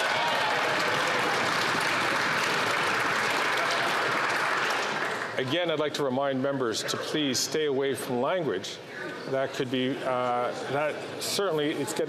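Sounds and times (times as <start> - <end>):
crowd applauding: 0.0 - 5.8.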